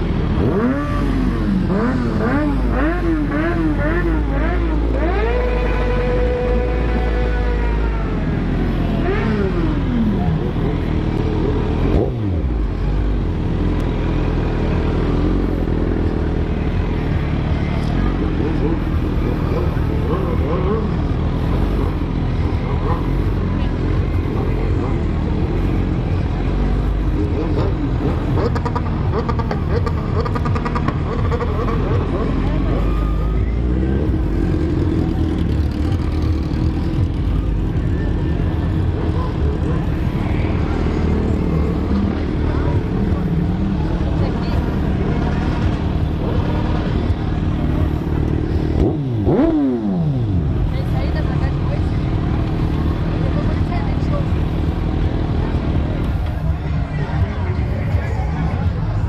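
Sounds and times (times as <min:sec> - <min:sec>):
motorcycle engine at low revs: 0:00.0 - 0:57.3
crowd voices: 0:00.0 - 0:59.0.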